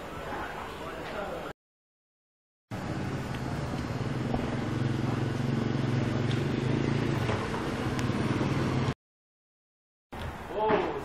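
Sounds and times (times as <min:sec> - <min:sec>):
engine running at low revs: 0:02.7 - 0:09.0.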